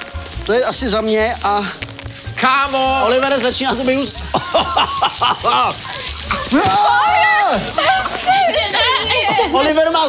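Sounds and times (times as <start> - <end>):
plastic wrap crinkling and tearing: 0.0 - 10.0
people laughing and shouting: 4.0 - 10.0.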